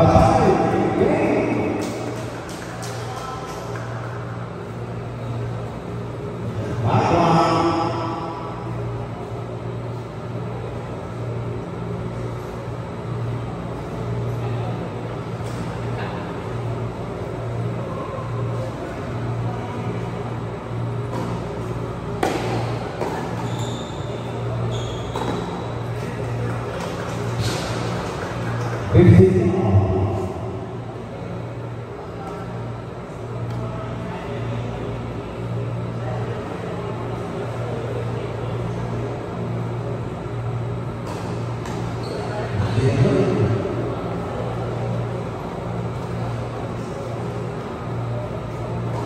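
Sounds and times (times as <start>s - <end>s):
steady low hum: 0.0s - 49.0s
tennis ball bounces: 22.2s - 23.5s.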